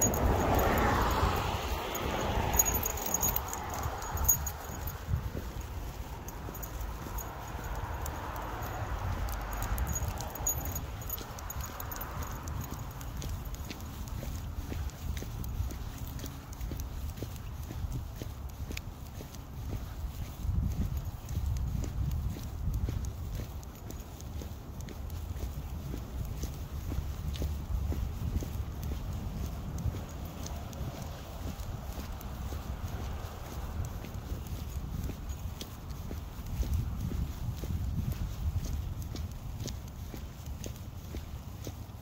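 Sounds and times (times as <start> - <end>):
footsteps on wet pavement: 0.0 - 42.0.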